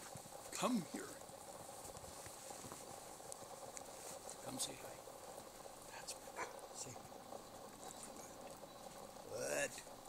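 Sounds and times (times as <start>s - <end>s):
dogs rustling in snow: 0.0s - 5.8s.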